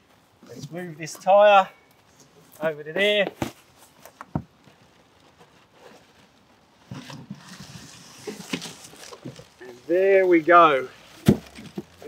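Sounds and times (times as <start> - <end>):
faint rustling: 0.0 - 12.0.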